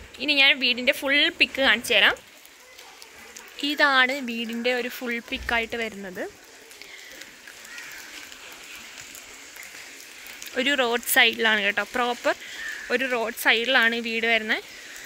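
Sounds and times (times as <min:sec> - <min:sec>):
faint outdoor background: 0:00.0 - 0:15.0
woman speaking: 0:00.2 - 0:02.2, 0:03.6 - 0:06.4.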